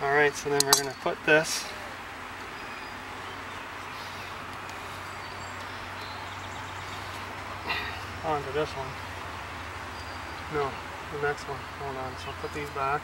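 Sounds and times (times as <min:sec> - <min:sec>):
honeybee colony humming: 0:01.0 - 0:13.0.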